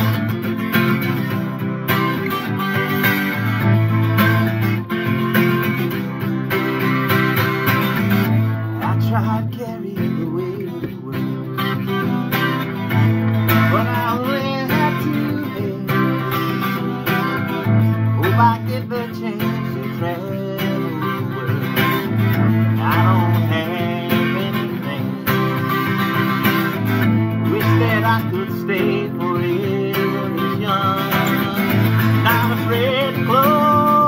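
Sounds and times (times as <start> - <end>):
acoustic guitar strummed: 0.0 - 34.0.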